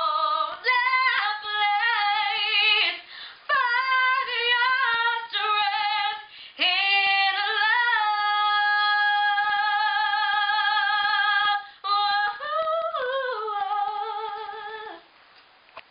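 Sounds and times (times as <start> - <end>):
woman singing unaccompanied: 0.0 - 15.1.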